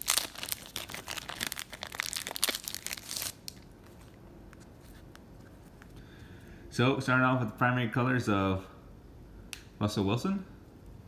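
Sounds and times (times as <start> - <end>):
plastic wrapping crinkling: 0.0 - 5.9.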